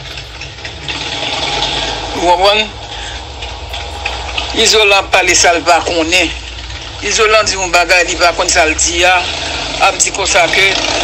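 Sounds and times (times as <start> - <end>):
machine running with rumble and hiss: 0.0 - 11.0.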